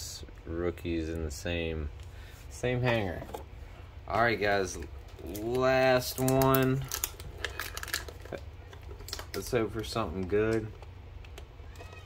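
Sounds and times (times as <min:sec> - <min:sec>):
packaging crinkling and tearing: 0:05.1 - 0:10.7.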